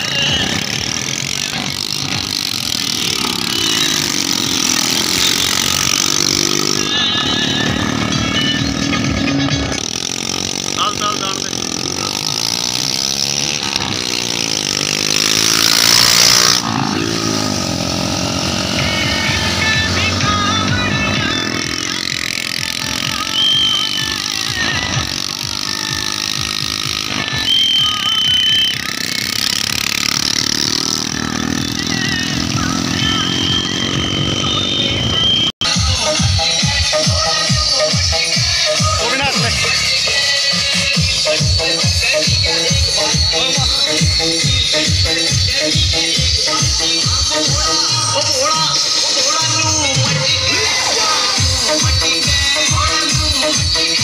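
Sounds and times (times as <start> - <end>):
indistinct voices: 0.0 - 54.0
motorcycle engines: 0.0 - 54.0.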